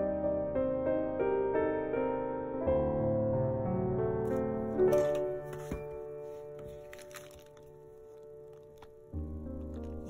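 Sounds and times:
soft piano music: 0:00.0 - 0:10.0
envelope paper rustling: 0:04.3 - 0:10.0.

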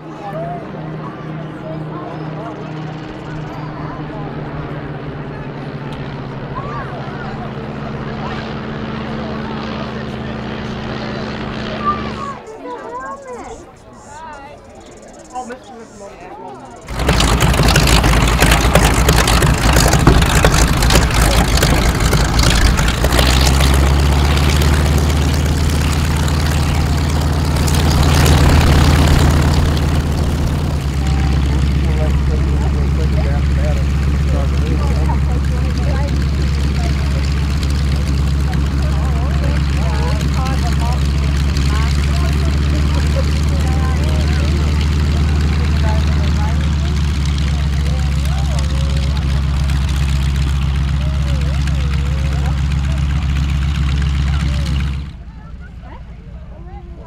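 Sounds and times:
aircraft radial engine running: 0:00.0 - 0:57.0.

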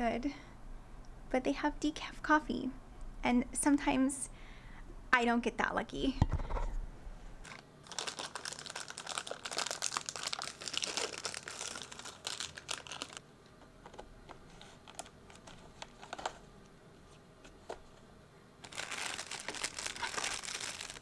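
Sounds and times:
plastic packet crinkling: 0:07.5 - 0:13.2, 0:18.6 - 0:21.0.

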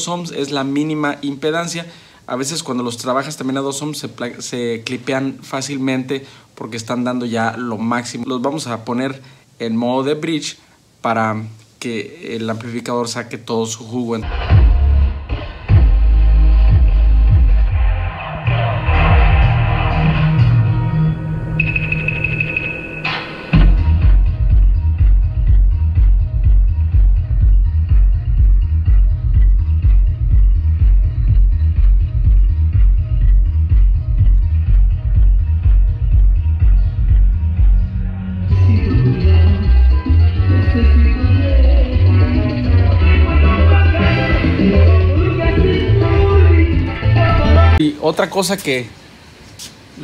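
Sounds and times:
bass-heavy music over speakers: 0:14.2 - 0:47.8
high tone: 0:20.0 - 0:24.1.

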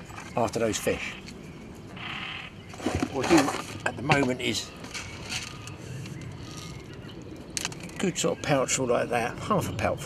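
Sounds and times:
low outdoor background noise: 0:00.0 - 0:10.0.

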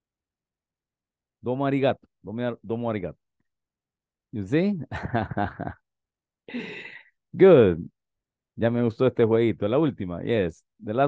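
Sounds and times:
man laughing: 0:04.8 - 0:05.8.

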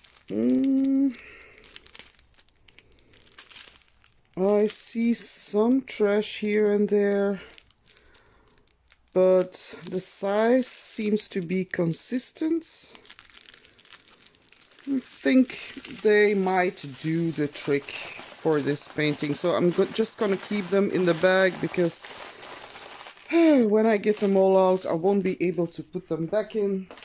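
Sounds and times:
faint crackles: 0:00.0 - 0:27.0
plastic bag crinkling: 0:00.0 - 0:27.0.

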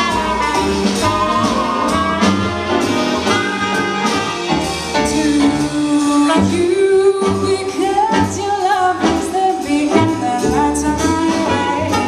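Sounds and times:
drums: 0:00.0 - 0:12.0
jazz band playing: 0:00.0 - 0:12.0
walking double bass: 0:00.0 - 0:12.0
woman singing: 0:05.0 - 0:12.0.

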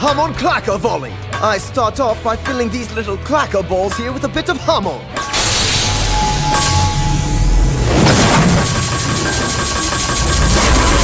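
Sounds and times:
music: 0:00.0 - 0:11.0
energy charging rush: 0:05.3 - 0:11.0.

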